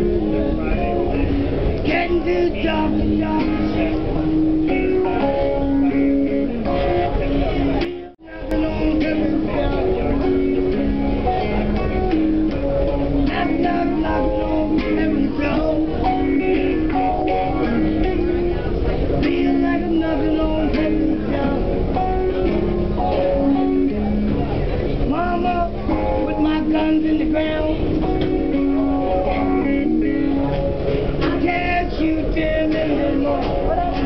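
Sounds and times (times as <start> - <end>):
electric guitar: 0.0 - 34.0.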